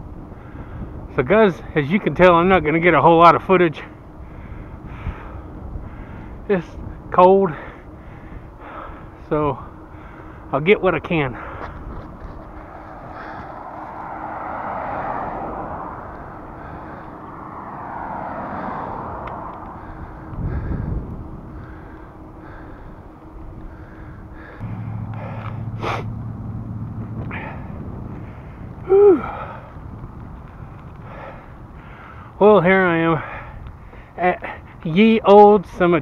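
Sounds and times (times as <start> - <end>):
steady low hum: 0.0 - 36.0
wind and road noise: 0.0 - 36.0
heavy breathing through face mask: 7.5 - 9.2, 11.4 - 14.0, 19.6 - 26.1, 31.0 - 32.4
person laughing: 28.9 - 29.3.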